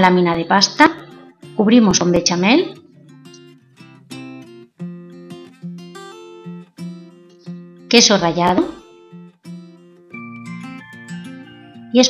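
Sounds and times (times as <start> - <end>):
acoustic guitar plucking: 0.3 - 12.0.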